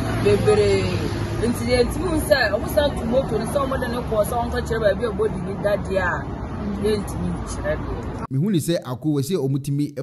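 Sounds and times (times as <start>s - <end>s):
people chattering: 0.0s - 8.3s
street traffic: 0.0s - 8.3s
woman talking: 0.1s - 8.2s.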